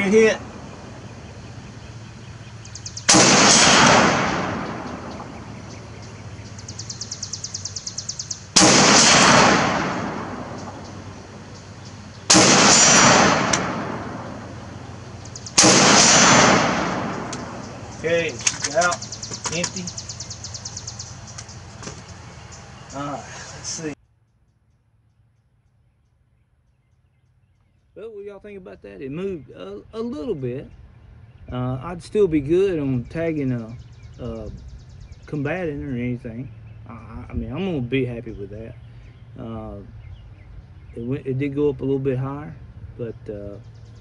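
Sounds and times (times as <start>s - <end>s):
rifle shots: 3.0s - 5.5s, 8.4s - 11.2s, 12.3s - 14.8s, 15.4s - 19.1s.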